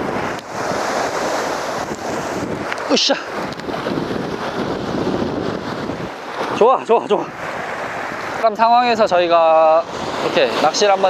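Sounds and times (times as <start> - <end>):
surf washing against rocks: 0.0 - 11.0
wind buffeting microphone: 0.0 - 11.0.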